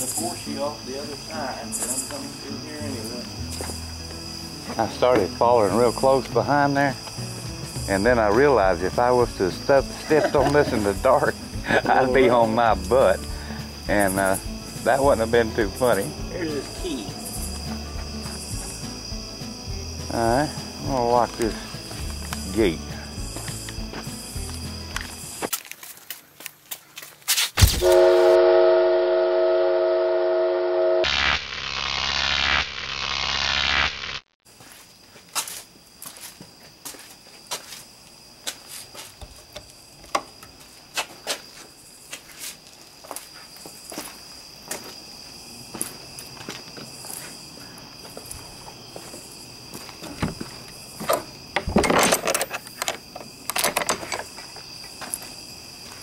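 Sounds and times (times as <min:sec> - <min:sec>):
crickets chirping: 0:00.0 - 0:56.0
footsteps: 0:03.2 - 0:05.4, 0:16.2 - 0:19.5, 0:21.3 - 0:27.8, 0:34.5 - 0:51.4, 0:54.0 - 0:56.0
loud horn blast: 0:27.8 - 0:31.6.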